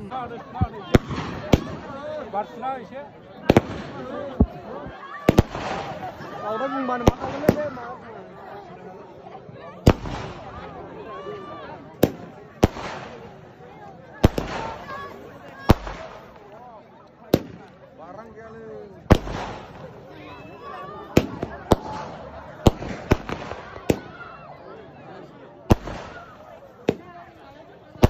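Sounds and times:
fireworks banging: 0:00.6 - 0:02.2, 0:03.4 - 0:06.4, 0:07.0 - 0:07.8, 0:09.8 - 0:10.7, 0:11.9 - 0:13.5, 0:14.2 - 0:16.6, 0:17.3 - 0:17.8, 0:19.0 - 0:20.1, 0:21.1 - 0:24.2, 0:25.7 - 0:27.2.

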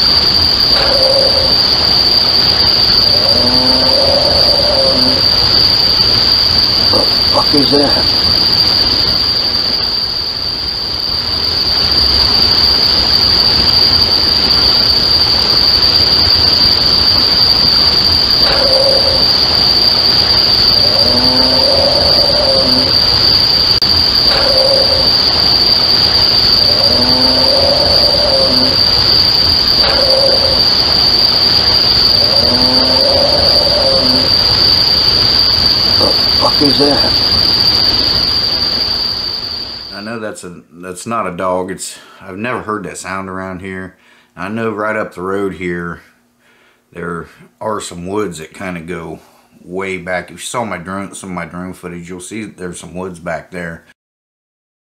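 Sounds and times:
night insects droning: 0:00.0 - 0:54.0
animal calling: 0:00.7 - 0:05.6, 0:06.9 - 0:08.2, 0:18.4 - 0:23.2, 0:24.1 - 0:34.7, 0:35.9 - 0:37.7.

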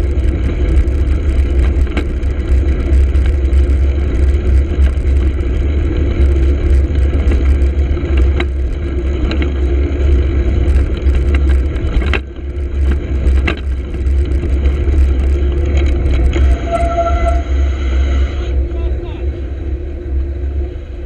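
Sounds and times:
passing car traffic: 0:00.0 - 0:21.0
tyre noise on wet road: 0:00.0 - 0:21.0
brief squeal: 0:16.4 - 0:18.5.

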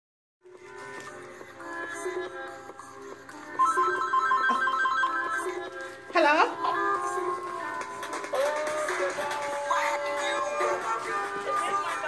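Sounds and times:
background music: 0:00.4 - 0:12.0
mobile phone ringtone: 0:03.6 - 0:05.8.

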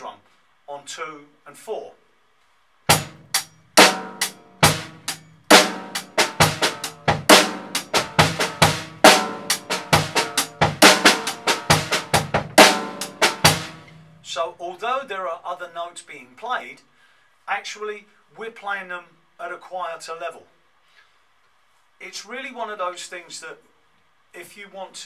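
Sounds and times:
snare drum backbeat: 0:02.9 - 0:13.9
bass drum: 0:02.9 - 0:14.0.

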